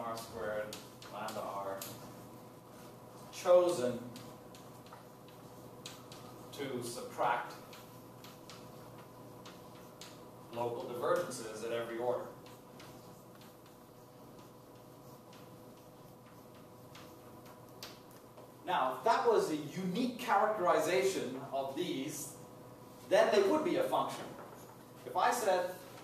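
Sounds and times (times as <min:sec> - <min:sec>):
chalk writing on blackboard: 0:00.0 - 0:18.6
faint room hum: 0:00.0 - 0:26.0.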